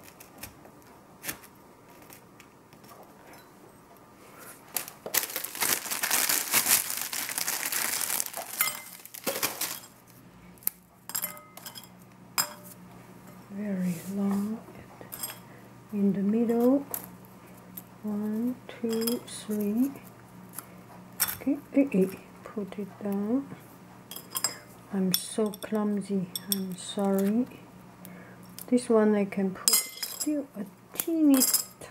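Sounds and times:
plastic bag crinkling: 4.5 - 10.2
clinks against glass cups: 11.1 - 12.6, 29.7 - 30.3.

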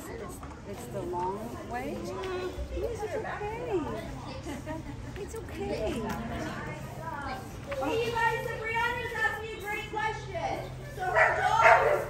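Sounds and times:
dog barking: 11.1 - 12.0.

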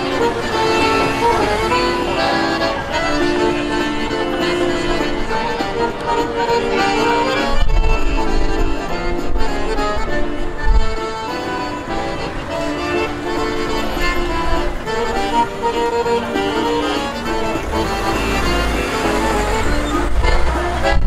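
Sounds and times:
accordion playing: 0.0 - 21.0.

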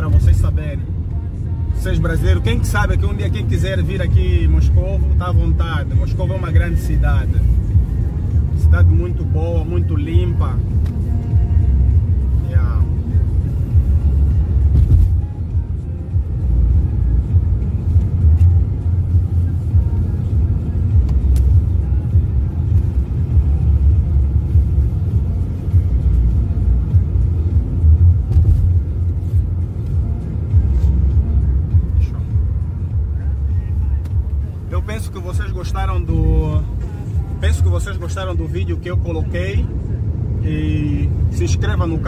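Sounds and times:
road and engine rumble in car: 0.0 - 42.0.

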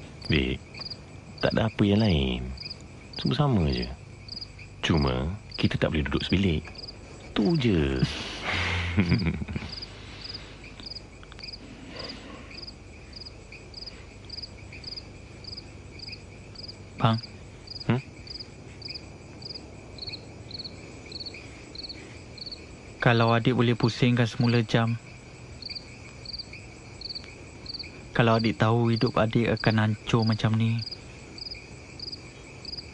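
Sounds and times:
crickets chirping: 0.0 - 32.9
high-pitched insect drone: 0.0 - 32.9.

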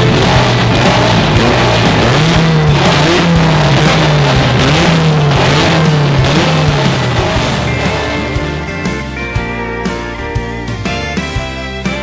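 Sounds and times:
motorcycle engine revving: 0.0 - 11.6
rock music: 0.0 - 12.0.

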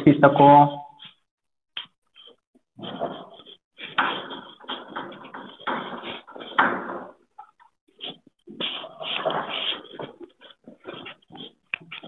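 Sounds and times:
duster scraping chalkboard: 1.8 - 7.2, 7.9 - 12.0.

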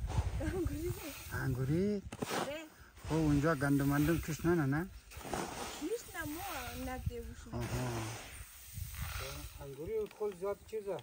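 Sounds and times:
grain being shovelled and tossed: 0.0 - 11.0
women talking: 0.4 - 1.2, 5.8 - 7.4.

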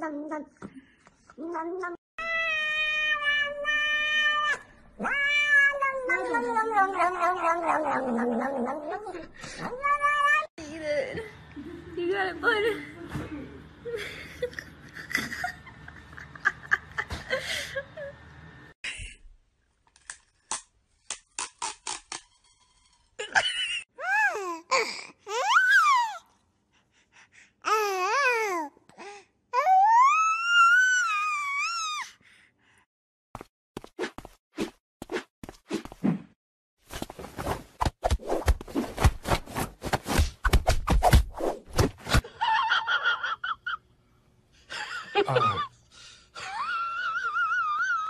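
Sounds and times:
cat meowing: 1.5 - 7.8.

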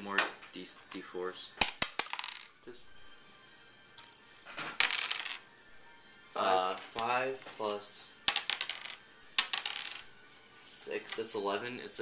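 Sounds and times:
dice clattering on wooden table: 1.7 - 2.5, 4.0 - 5.4, 8.3 - 10.1.

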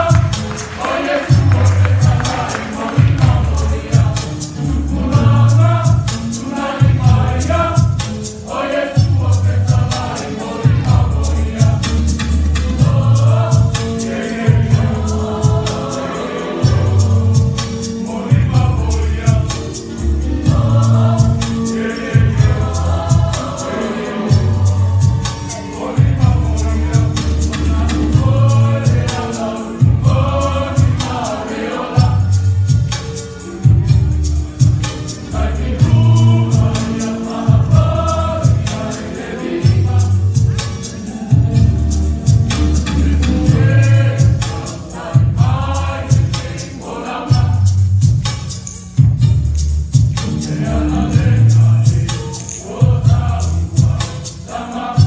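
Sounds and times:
mixed choir singing in harmony: 0.0 - 49.3, 49.9 - 55.0
steady percussive beat: 0.0 - 55.0
low bass notes: 3.2 - 5.8, 26.0 - 29.0, 35.4 - 36.6, 41.4 - 44.2, 49.0 - 52.0.

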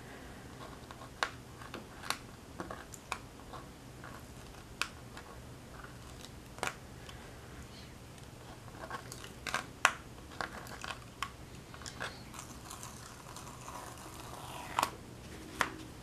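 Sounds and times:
fingertips rubbing paper: 11.8 - 14.9.

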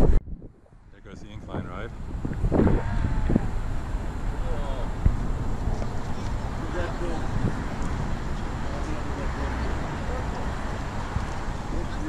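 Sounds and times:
wind rumble on microphone: 0.0 - 12.0
indistinct voices talking: 0.9 - 12.0.

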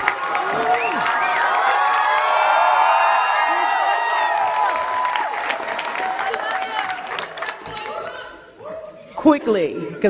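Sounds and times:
crowd cheering: 0.0 - 8.8.

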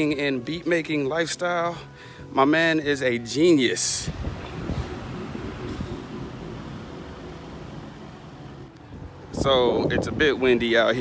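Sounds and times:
low uneven street rumble: 3.9 - 10.7.

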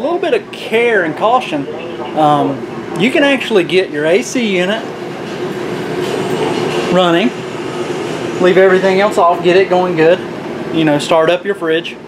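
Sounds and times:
air conditioner hum: 0.0 - 12.0
air rushing from vent: 4.0 - 11.0.

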